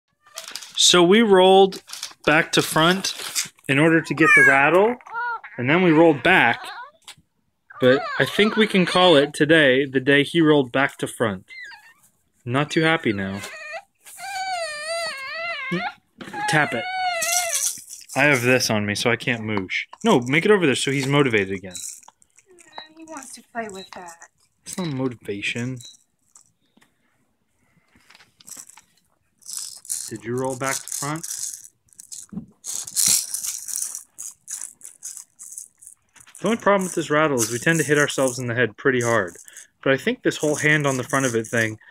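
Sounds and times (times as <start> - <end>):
plastic rattle shaken: 0.4 - 1.0, 1.7 - 4.8, 16.5 - 18.7, 20.0 - 24.8, 25.6 - 26.6, 28.0 - 41.9
infant crying: 3.8 - 7.0, 7.7 - 9.4, 13.0 - 18.6.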